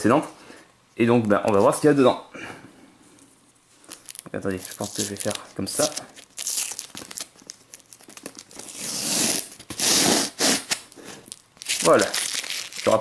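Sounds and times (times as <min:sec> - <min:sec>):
packing tape ripping off cardboard: 0:03.9 - 0:13.0.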